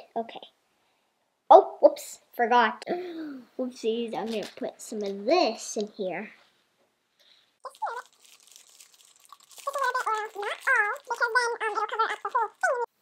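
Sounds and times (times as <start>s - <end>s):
plastic bag crinkling: 7.6s - 12.9s
fake snow pouring into plastic: 7.7s - 12.6s
girl vocalising sing-song: 9.6s - 13.0s.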